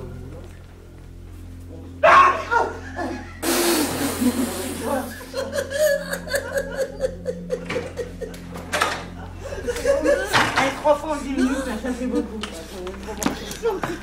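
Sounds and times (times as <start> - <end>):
excited voices: 2.0 - 3.2
group laughter: 2.3 - 12.6, 13.4 - 14.0.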